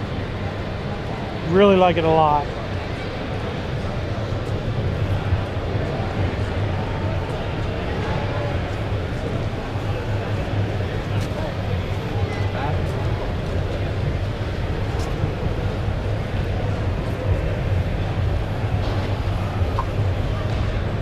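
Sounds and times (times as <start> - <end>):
many indistinct voices: 0.0 - 21.0
steady low rumble: 3.6 - 21.0.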